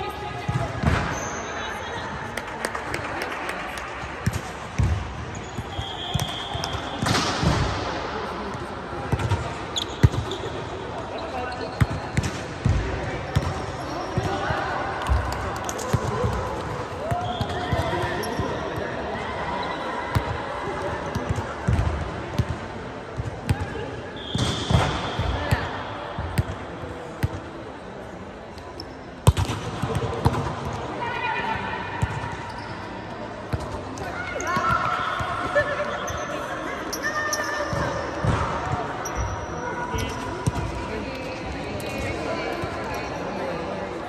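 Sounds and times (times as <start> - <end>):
sneakers squeaking: 4.2 - 7.3, 9.2 - 16.3, 17.0 - 18.9, 28.6 - 30.4, 32.0 - 40.6.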